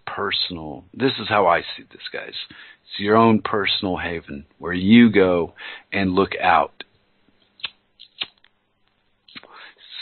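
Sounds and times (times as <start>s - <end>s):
short sharp clicks: 7.6s - 8.6s.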